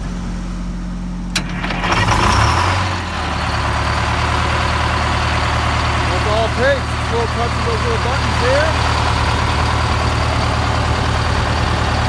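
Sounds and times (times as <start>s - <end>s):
diesel engine cranking and idling: 0.0s - 12.0s.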